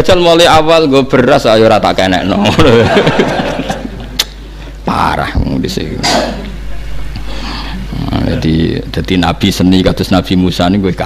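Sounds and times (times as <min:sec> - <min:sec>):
steady low hum: 0:00.0 - 0:11.0
man speaking: 0:04.8 - 0:06.6, 0:07.5 - 0:11.0.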